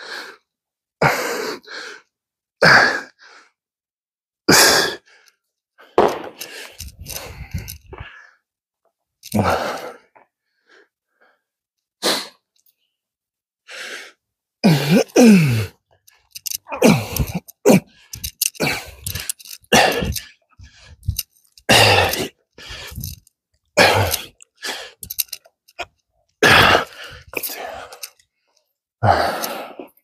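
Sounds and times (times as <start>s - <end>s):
man breathing forcefully: 4.5s - 8.2s, 13.7s - 23.2s, 23.8s - 25.4s, 26.4s - 28.2s
man grunting: 14.6s - 15.8s, 16.6s - 17.9s, 21.7s - 22.3s.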